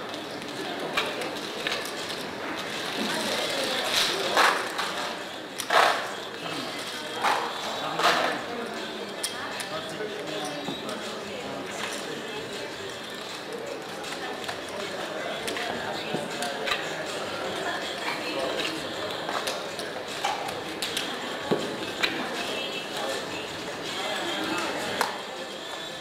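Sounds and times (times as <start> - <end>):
murmur of background chatter: 0.0 - 26.0.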